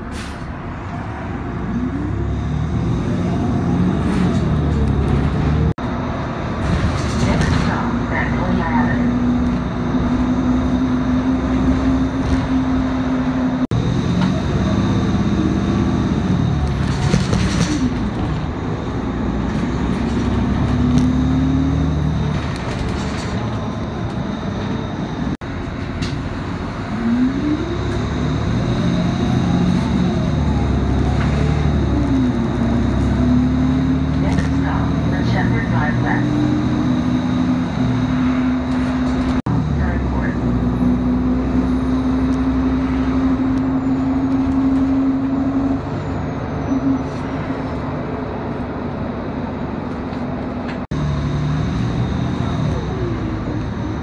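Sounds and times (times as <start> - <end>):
bus engine and transmission whine: 0.0 - 54.0
road rumble: 0.0 - 54.0.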